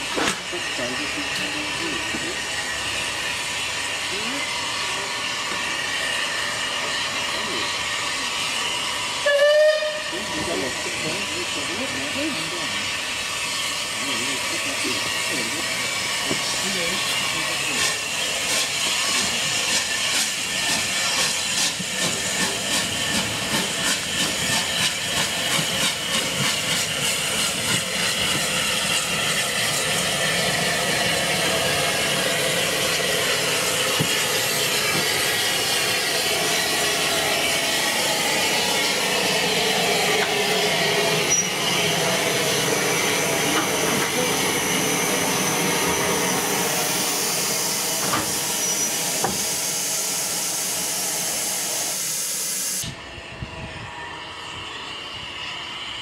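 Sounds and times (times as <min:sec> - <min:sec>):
steam hissing: 0:00.0 - 0:56.0
steam locomotive exhaust beats: 0:00.0 - 0:56.0
train rumbling on rails: 0:00.0 - 0:56.0.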